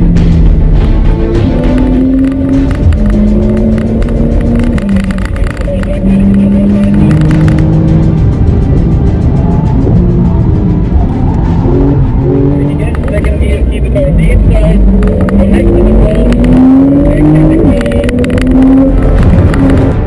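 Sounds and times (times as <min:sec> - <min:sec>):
car engine driven hard: 0:00.0 - 0:20.0
music with held notes: 0:00.0 - 0:20.0.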